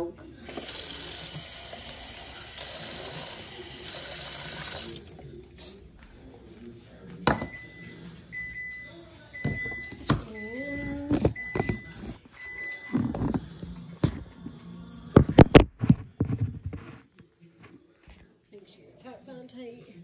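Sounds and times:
water running from a tap: 0.4s - 5.2s.

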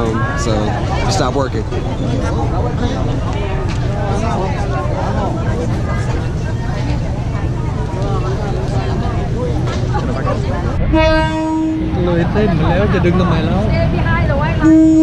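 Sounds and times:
crowd chatter: 0.0s - 15.0s
train horn: 10.9s - 12.2s, 14.6s - 15.0s.

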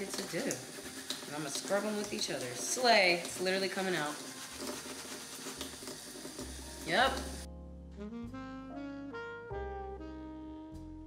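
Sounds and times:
wet fabric scrubbed by hand: 0.0s - 7.0s
tap running into sink: 0.0s - 7.5s.

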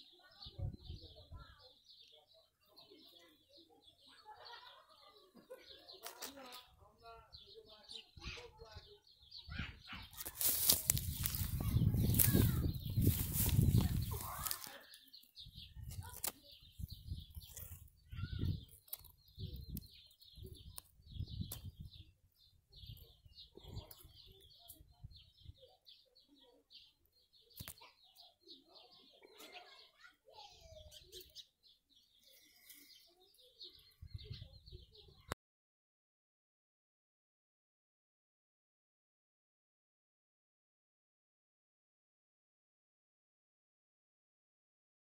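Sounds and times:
birds chirping: 0.0s - 35.4s.

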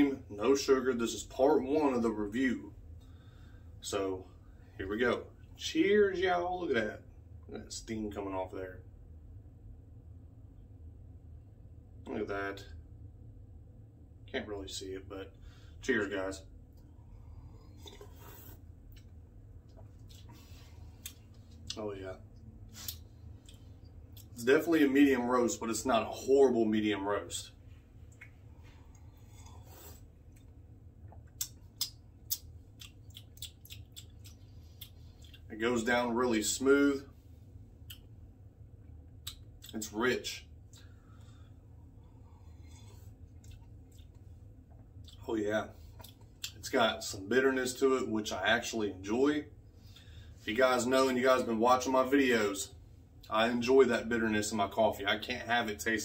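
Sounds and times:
low steady hum: 0.0s - 56.0s
person sipping coffee: 16.8s - 21.8s, 28.1s - 35.5s, 40.8s - 45.2s
sipping and swallowing coffee: 17.0s - 21.4s.

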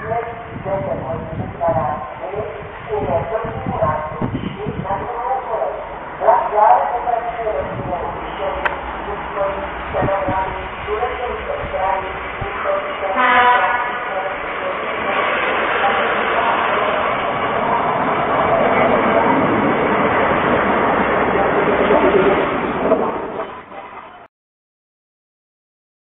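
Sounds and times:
diesel railbus engine passing: 0.2s - 24.3s
train horn tone: 13.1s - 14.1s.

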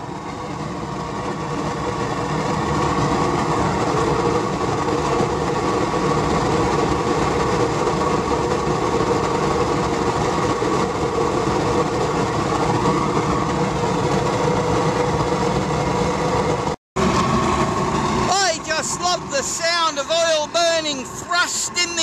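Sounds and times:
blower droning: 0.0s - 22.0s
oil burner flame roaring: 0.0s - 22.0s.

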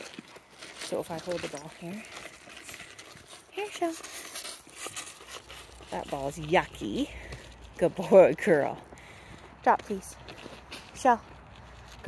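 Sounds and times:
paws shifting on gravel: 0.0s - 12.0s.

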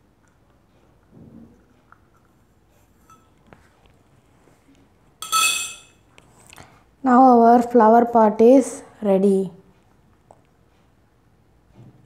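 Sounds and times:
metal pipe clinking: 3.0s - 3.4s, 5.2s - 6.0s.

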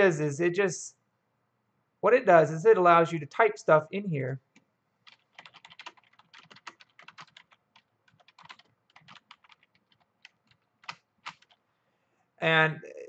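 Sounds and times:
computer keyboard typing: 5.0s - 11.6s.

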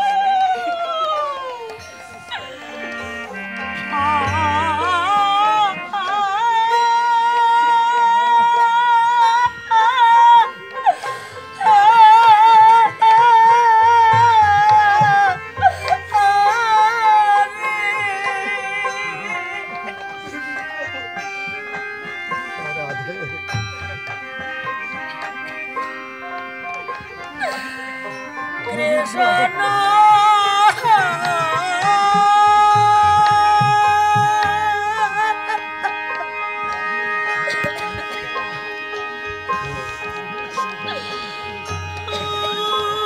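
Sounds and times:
devotional music with wavering melody: 0.0s - 43.0s.

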